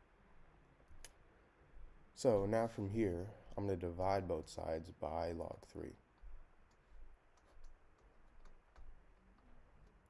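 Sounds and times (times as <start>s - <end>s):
faint clicks and taps of stylus: 6.1s - 10.0s.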